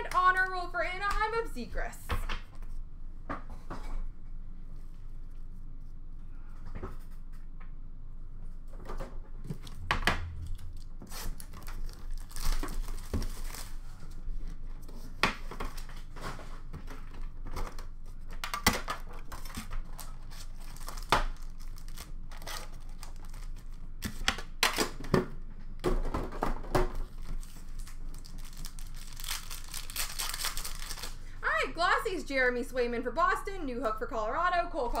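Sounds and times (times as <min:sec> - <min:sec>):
foil wrappers crinkling and tearing: 0:10.5 - 0:14.5, 0:19.1 - 0:24.2, 0:27.0 - 0:31.4.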